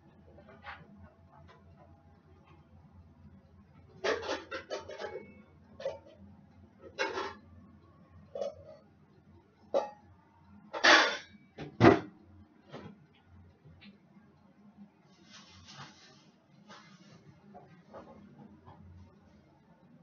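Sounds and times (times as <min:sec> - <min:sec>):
air fryer humming: 0:00.0 - 0:19.9.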